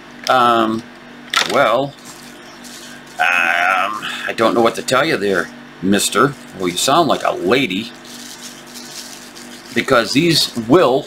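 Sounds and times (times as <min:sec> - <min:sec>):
person's wavering vocal sound: 0:03.2 - 0:04.3.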